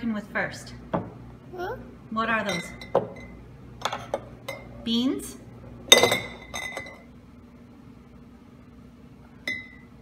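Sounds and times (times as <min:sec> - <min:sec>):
glass jar clinking: 0:05.9 - 0:07.1.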